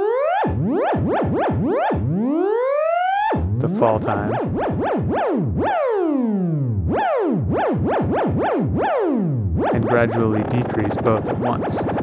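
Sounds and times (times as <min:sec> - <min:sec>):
buzzy synthesizer tone swooping: 0:00.0 - 0:12.0.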